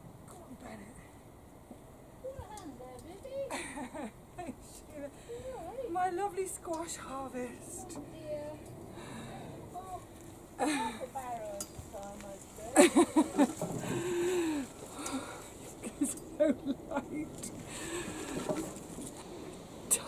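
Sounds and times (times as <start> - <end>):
woman laughing: 3.3 - 5.6, 10.6 - 11.2, 12.7 - 17.6.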